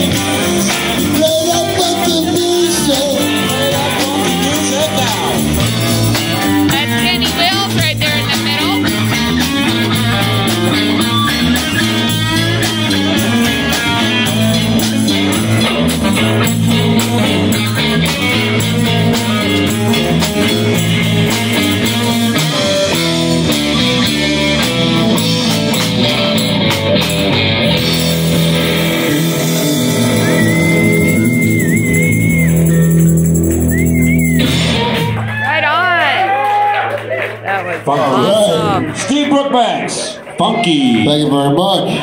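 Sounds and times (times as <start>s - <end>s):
drum kit: 0.0s - 35.4s
electric guitars: 0.0s - 41.2s
bass guitar: 0.0s - 42.0s.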